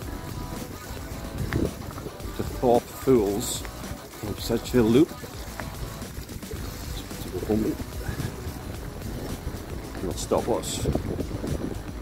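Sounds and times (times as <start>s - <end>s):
bicycle rolling over gravel: 0.5s - 11.8s.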